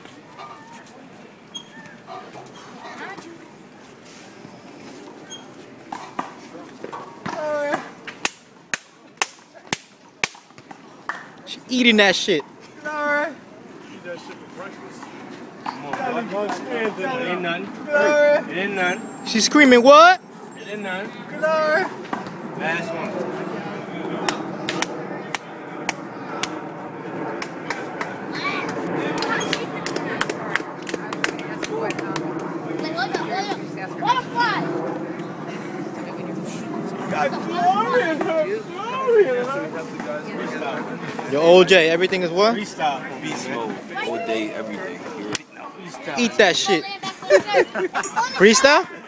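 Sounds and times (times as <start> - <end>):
steady background noise: 0.0 - 49.0.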